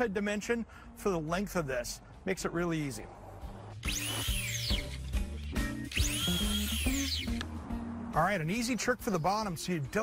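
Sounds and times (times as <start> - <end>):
background music: 0.0 - 10.0
miter saw motor whine: 3.8 - 5.0, 5.7 - 7.4.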